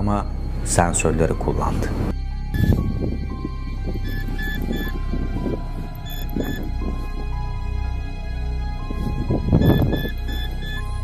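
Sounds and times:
dark tense background music: 0:00.0 - 0:11.0
low drone: 0:01.9 - 0:11.0
short high beeps: 0:04.1 - 0:04.9, 0:06.0 - 0:06.6, 0:09.6 - 0:11.0.

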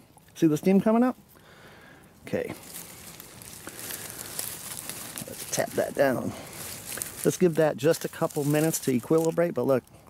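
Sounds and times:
dry leaves rustling and crackling: 0:02.3 - 0:10.0.

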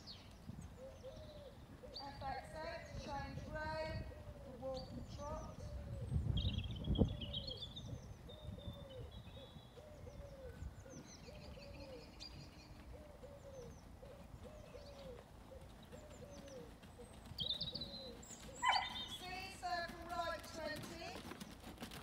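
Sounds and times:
small birds chirping: 0:00.0 - 0:21.7
dog barking: 0:18.6 - 0:19.0.

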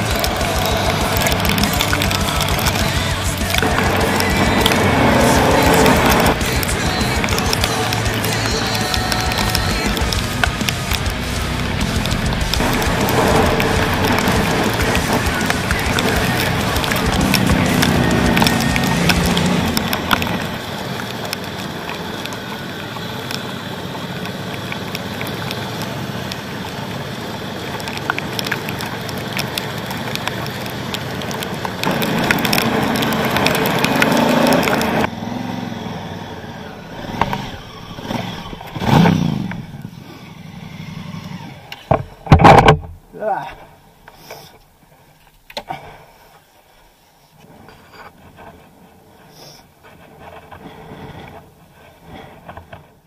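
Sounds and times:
motorcycle engine: 0:00.0 - 0:43.9.

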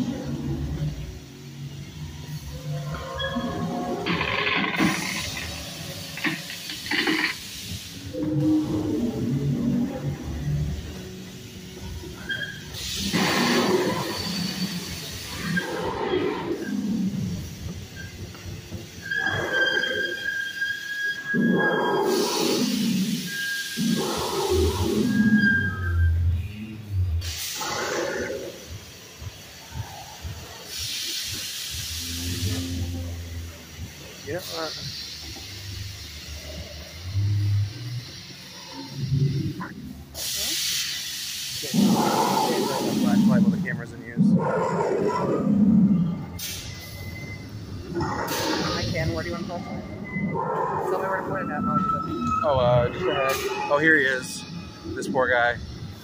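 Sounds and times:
dinosaur roars and growls: 0:08.1 - 0:10.8, 0:12.8 - 0:17.7, 0:21.3 - 0:26.0, 0:27.2 - 0:28.7, 0:31.9 - 0:33.5, 0:41.6 - 0:46.5, 0:47.8 - 0:53.7.

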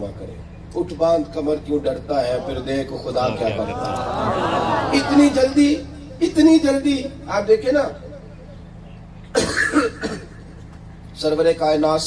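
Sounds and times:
sound system hum: 0:00.3 - 0:11.4
man coughing: 0:09.3 - 0:10.4.

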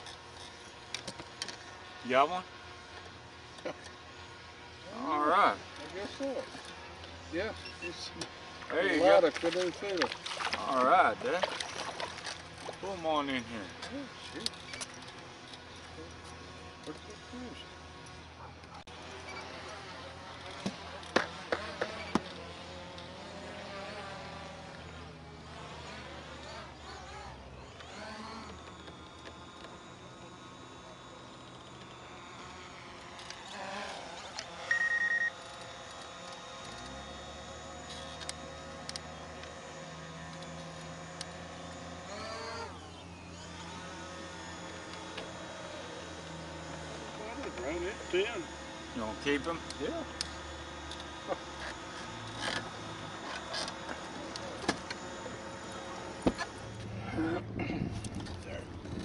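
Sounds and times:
short high beep: 0:34.7 - 0:35.3.

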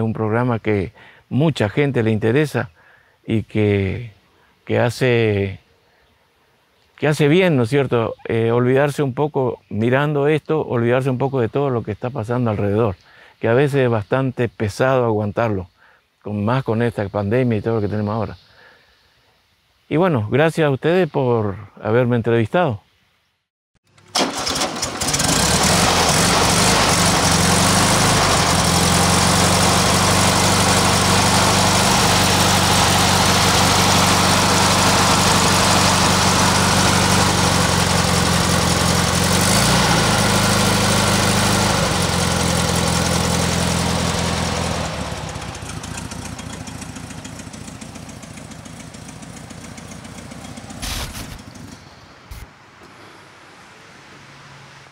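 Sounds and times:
air-cooled car engine running: 0:24.0 - 0:52.4.

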